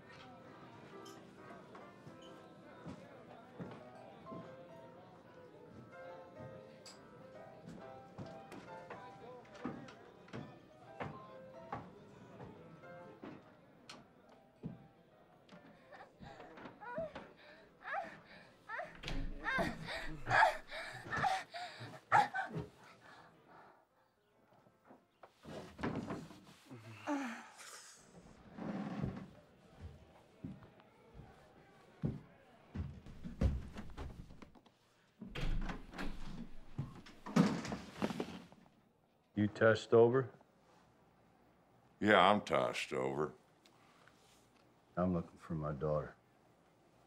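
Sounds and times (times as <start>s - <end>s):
background score music: 0.0s - 23.7s
footsteps on wooden stairs: 32.0s - 34.6s.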